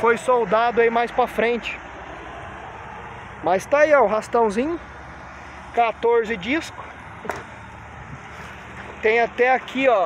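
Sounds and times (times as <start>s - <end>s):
highway traffic rumble: 0.0s - 10.0s.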